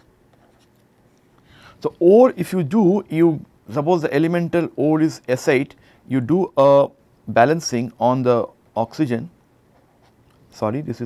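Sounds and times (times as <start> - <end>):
stylus scratching on tablet: 9.7 - 10.2.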